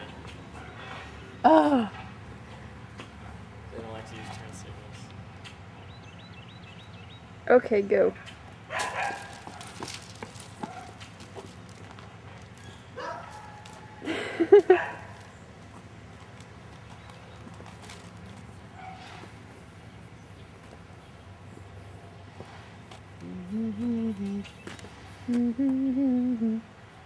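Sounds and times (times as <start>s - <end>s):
footsteps on asphalt: 8.5s - 19.7s, 24.5s - 25.4s.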